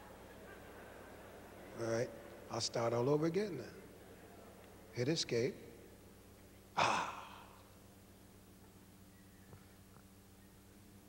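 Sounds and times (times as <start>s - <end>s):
man sighing into microphone: 6.8s - 7.6s.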